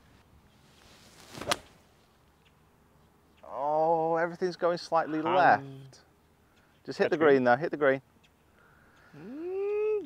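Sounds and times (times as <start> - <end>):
golf club swish: 0.6 - 1.8.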